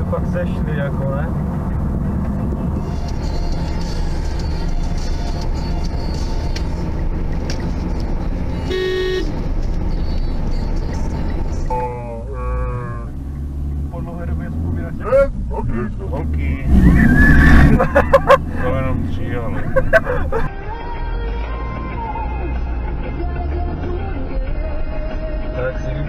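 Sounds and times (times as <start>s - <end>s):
car road noise: 0.0s - 26.0s
people's voices: 13.9s - 20.5s.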